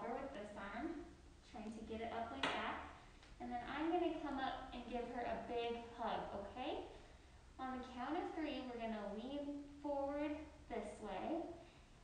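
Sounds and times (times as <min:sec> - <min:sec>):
woman speaking: 0:00.0 - 0:07.0, 0:07.6 - 0:11.6.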